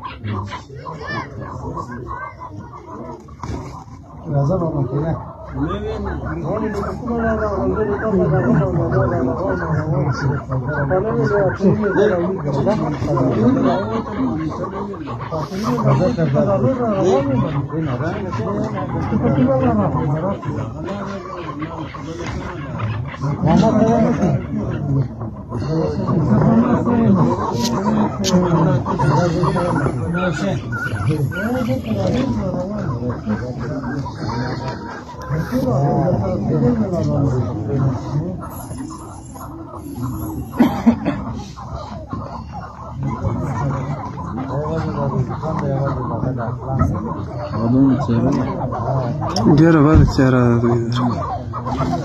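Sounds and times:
partridges calling: 0:26.8 - 0:35.9, 0:37.6 - 0:40.7.

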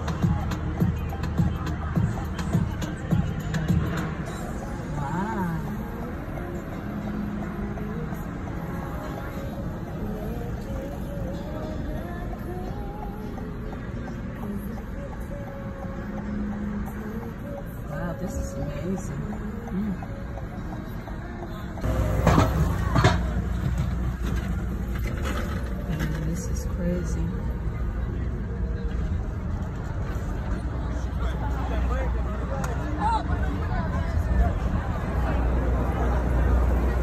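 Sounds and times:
city street traffic: 0:00.0 - 0:37.0
music with singing voice: 0:00.0 - 0:37.0
people's voices: 0:00.0 - 0:37.0.

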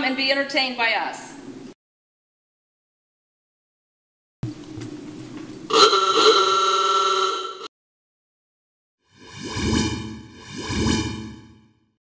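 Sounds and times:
raspy car horn honking: 0:05.7 - 0:07.7.

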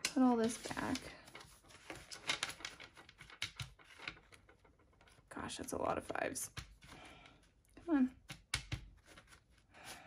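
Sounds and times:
banknotes rustling and tapping: 0:00.0 - 0:10.0.

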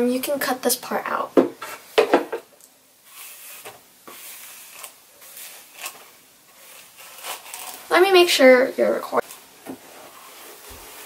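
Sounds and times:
hairbrush swishing through hair: 0:03.0 - 0:08.0, 0:09.2 - 0:11.0.

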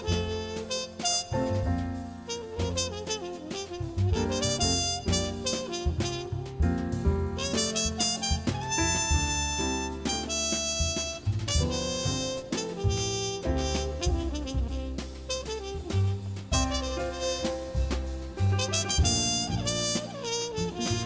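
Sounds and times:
drums: 0:00.0 - 0:21.0
muted trumpet melody: 0:00.0 - 0:21.0
piano chords: 0:00.0 - 0:21.0
walking bass line: 0:00.0 - 0:21.0.

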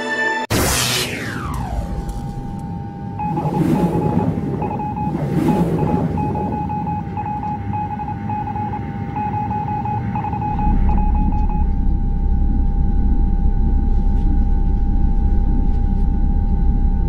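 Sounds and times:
steady high electronic tone: 0:00.5 - 0:17.0
deep low drone: 0:01.1 - 0:17.0
rapid stuttering beeps: 0:03.0 - 0:13.8.

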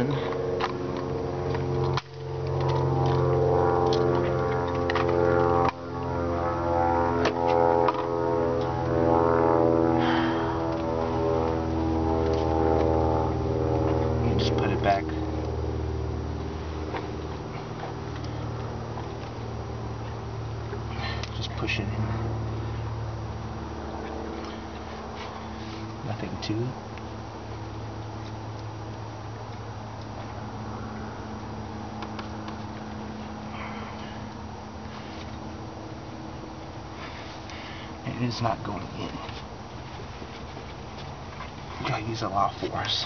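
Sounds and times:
car engine idling: 0:07.2 - 0:43.0.

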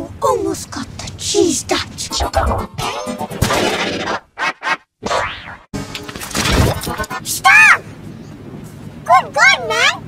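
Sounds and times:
warbling pitch-shifted audio wash: 0:02.0 - 0:05.7.

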